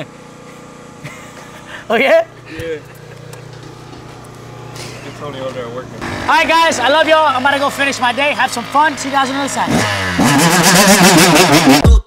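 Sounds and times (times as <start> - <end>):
engine idling: 0.0 - 11.8.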